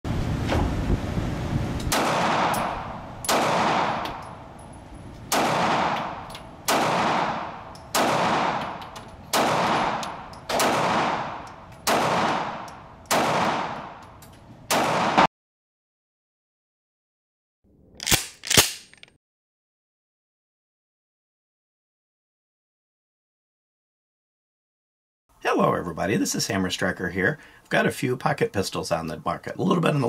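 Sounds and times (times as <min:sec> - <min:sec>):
low rumbling noise: 0:00.1 - 0:14.0
pistol shots echoing: 0:01.9 - 0:04.5, 0:05.3 - 0:14.0, 0:14.7 - 0:15.3.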